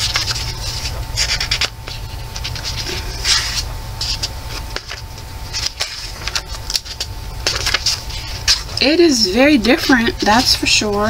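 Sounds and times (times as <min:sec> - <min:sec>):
paper pages rustling: 0:00.0 - 0:11.0.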